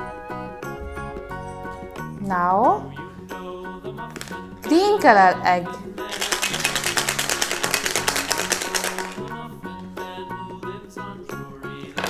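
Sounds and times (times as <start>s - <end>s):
background music: 0.0s - 12.0s
fast run of sharp clicks: 6.1s - 9.3s.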